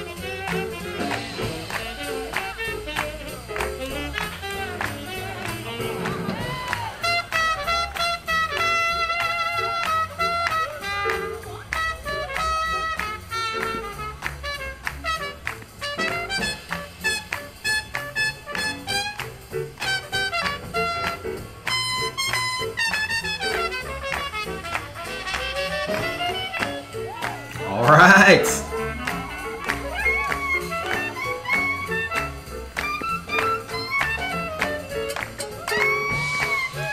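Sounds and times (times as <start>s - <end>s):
swing big band playing jazz: 0.0s - 36.9s.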